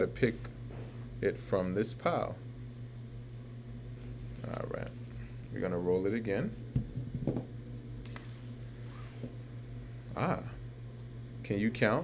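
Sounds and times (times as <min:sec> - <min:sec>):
die tumbling on wooden table: 0:06.8 - 0:07.5.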